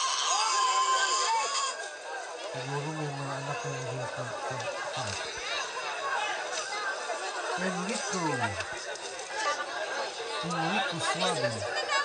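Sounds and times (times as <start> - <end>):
crowd chatter: 0.0 - 12.0
person talking above crowd: 10.4 - 11.8.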